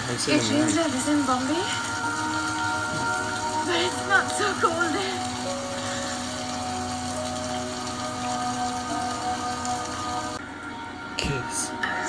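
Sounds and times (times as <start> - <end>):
hiss of rain: 0.0 - 12.0.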